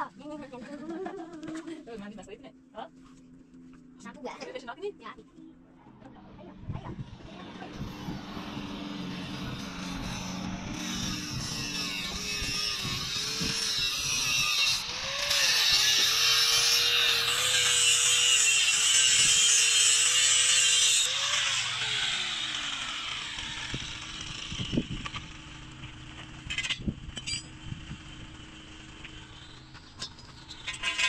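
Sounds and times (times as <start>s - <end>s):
angle grinder cutting steel: 5.9s - 31.0s.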